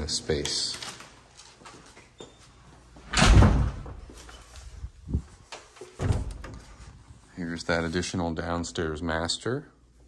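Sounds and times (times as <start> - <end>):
door thud: 3.1 - 4.1, 6.0 - 6.7.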